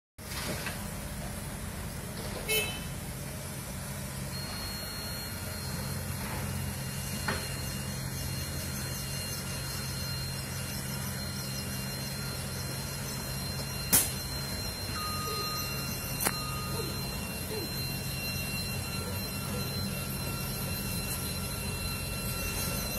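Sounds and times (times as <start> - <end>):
diesel engines running: 0.2 - 22.9
thin high whine: 4.2 - 22.9.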